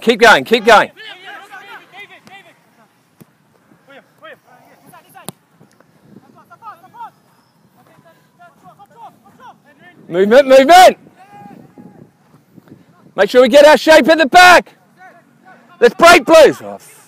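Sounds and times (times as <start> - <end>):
distant boys' voices calling: 0.0 - 13.2.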